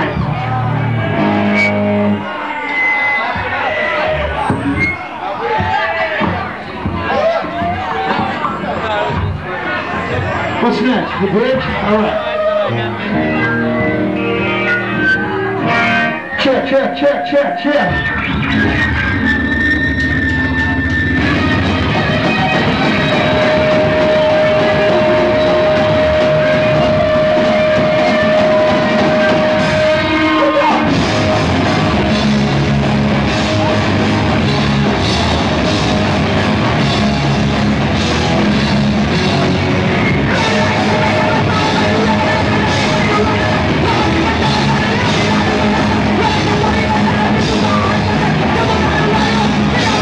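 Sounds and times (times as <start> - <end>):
live rock band playing: 0.0 - 5.0, 6.7 - 50.0
electric guitars holding chord: 12.7 - 16.4, 17.8 - 50.0
person singing: 40.0 - 50.0.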